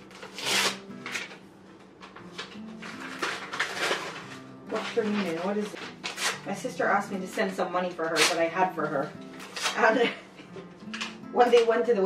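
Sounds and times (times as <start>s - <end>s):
paper rustling and crinkling: 0.0s - 6.5s, 7.1s - 10.0s
soft background music: 0.0s - 12.0s.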